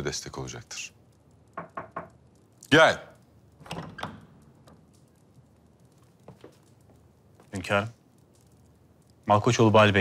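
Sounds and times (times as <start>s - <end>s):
faint clicks: 1.0s - 9.4s
wooden door opening: 1.6s - 2.2s, 3.6s - 5.0s.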